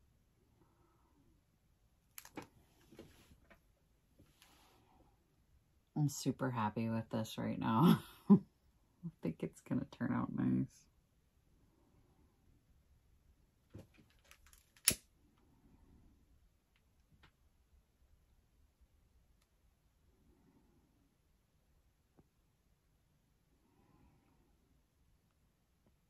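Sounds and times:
soft handling sounds: 2.0 - 5.1, 13.6 - 15.5.

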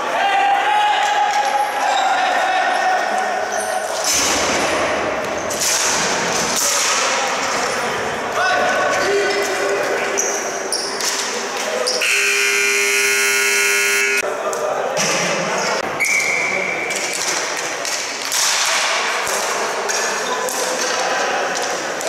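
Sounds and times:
players' voices: 6.1 - 22.0
arena buzzer: 12.0 - 14.2.

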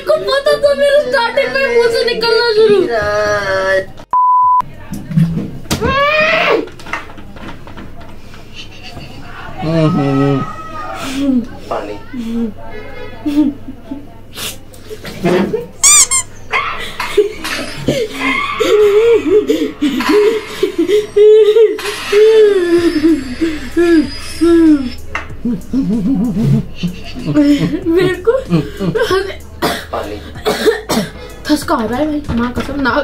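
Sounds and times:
people talking: 0.0 - 4.0, 7.4 - 15.8, 16.8 - 33.0
voices: 4.7 - 33.0
background music: 19.5 - 33.0
person coughing and spluttering: 28.6 - 31.2.

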